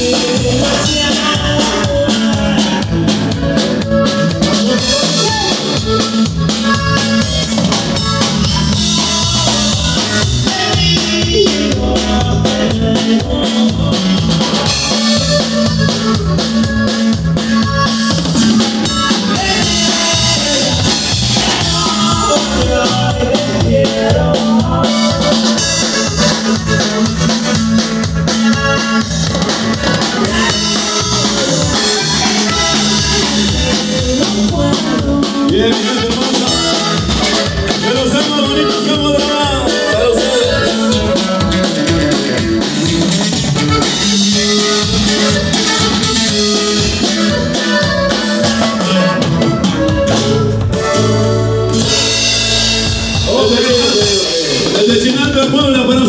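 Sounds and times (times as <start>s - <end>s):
band music with drum beat: 0.0s - 56.0s
bass line: 0.0s - 56.0s.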